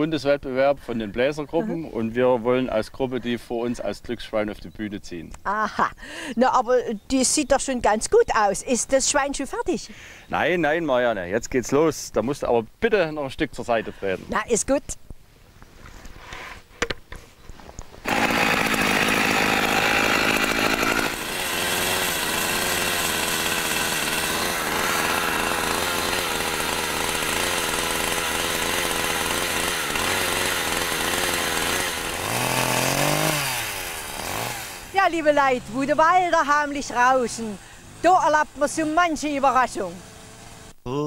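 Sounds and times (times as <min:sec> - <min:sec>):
chainsaw cutting wood: 0:18.0 - 0:40.7.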